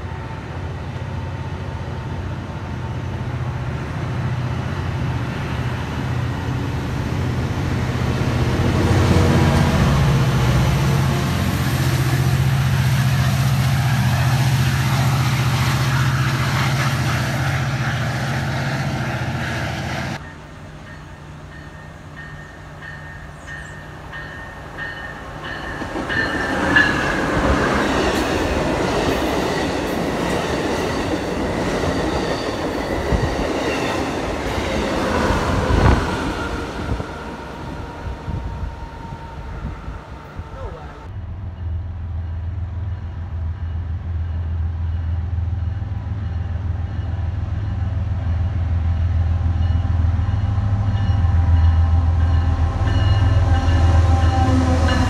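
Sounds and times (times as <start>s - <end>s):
diesel train approaching: 0.0s - 55.0s
train wheels rumbling on rail: 0.0s - 55.0s.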